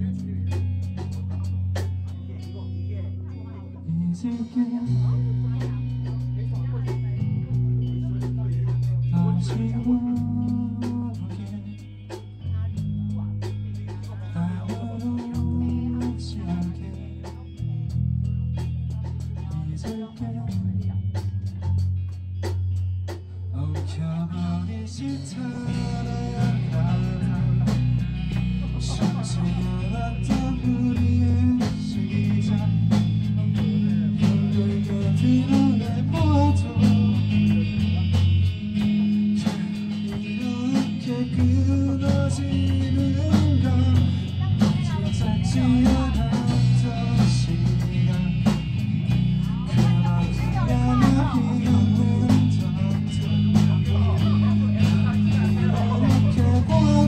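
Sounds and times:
drum kit and cymbals: 0.0 - 2.8, 4.1 - 57.0
person singing: 0.0 - 17.9, 23.6 - 57.0
electric bass low notes: 0.0 - 57.0
electric guitar: 0.0 - 57.0
rock band playing live: 0.0 - 57.0.

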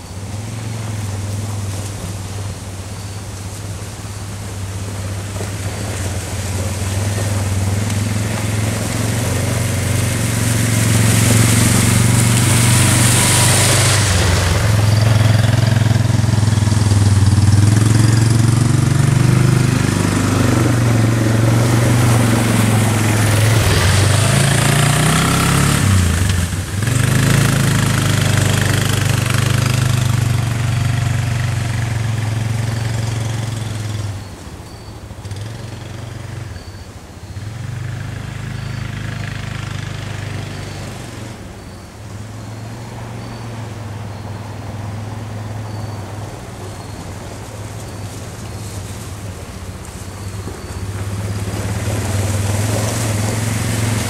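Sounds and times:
atv engine passing by: 0.0 - 54.0.

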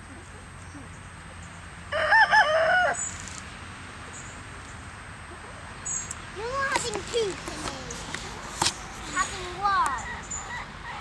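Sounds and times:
rooster crowing: 1.9 - 3.1.

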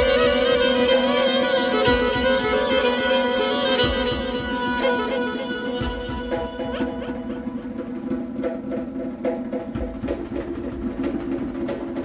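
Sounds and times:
solo violin melody: 0.0 - 8.0.

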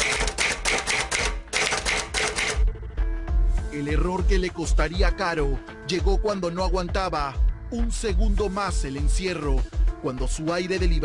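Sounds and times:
typewriter keystroke clicks: 0.0 - 2.6.

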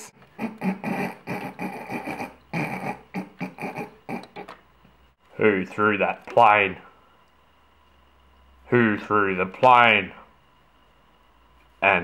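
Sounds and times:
suppressed giggling: 0.4 - 4.6.

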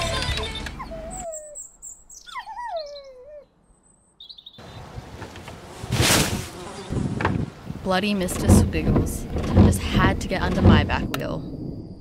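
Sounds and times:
birds whistling: 0.7 - 4.9.

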